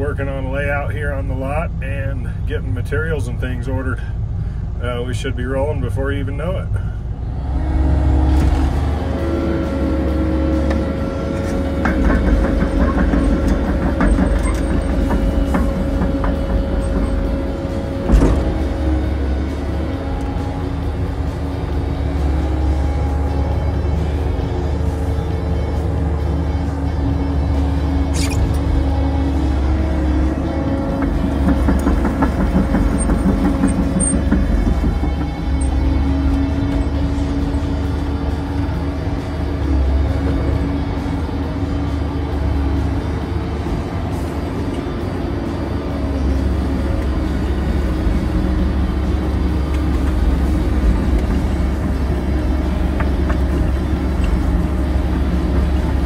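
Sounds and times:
excavator diesel engine and hydraulics: 0.0s - 56.0s
music: 11.6s - 44.7s
sharp click: 28.1s - 28.6s.

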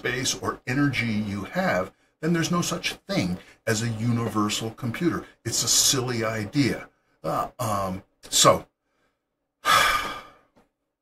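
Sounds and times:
man sighing: 9.6s - 10.5s.

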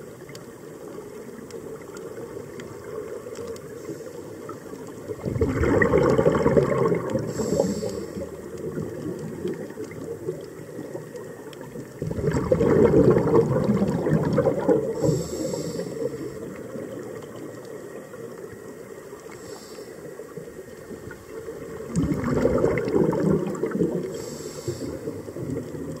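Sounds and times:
underwater exhaled bubbles rumbling: 0.0s - 26.0s
regulator inhalation hiss: 7.2s - 8.4s, 14.9s - 16.5s, 19.2s - 20.3s, 24.0s - 25.4s.

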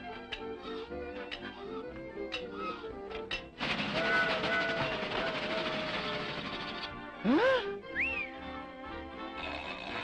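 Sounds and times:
cartoon trolley rattling on rails: 3.6s - 7.0s.

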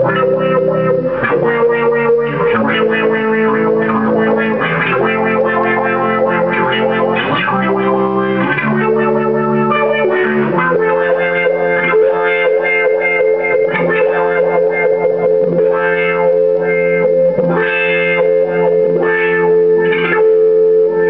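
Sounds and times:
electric guitar with wah: 0.0s - 21.0s.

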